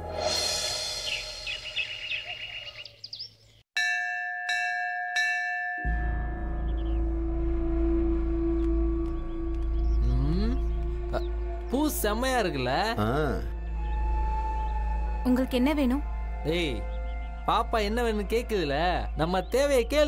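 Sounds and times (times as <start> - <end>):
birds chirping: 0.9 - 3.7, 6.3 - 20.0
temple bell ringing: 3.8 - 7.1
low droning background music: 5.8 - 20.0.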